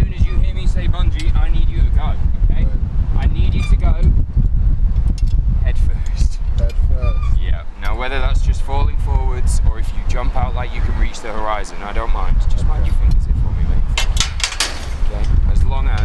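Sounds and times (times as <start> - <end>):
man talking: 0.0 - 4.1, 5.6 - 13.9, 15.0 - 16.0
wind rumble on microphone: 0.0 - 16.0.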